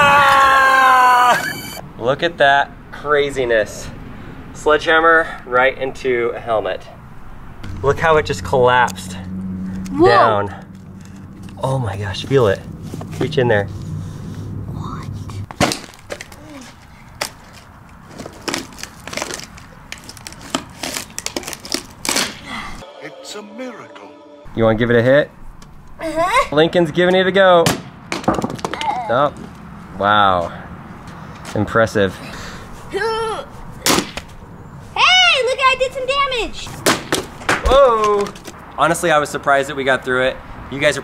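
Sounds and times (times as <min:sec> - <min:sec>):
person shouting: 0:00.0 - 0:01.7
helmet shell cracking and crunching: 0:15.5 - 0:22.4.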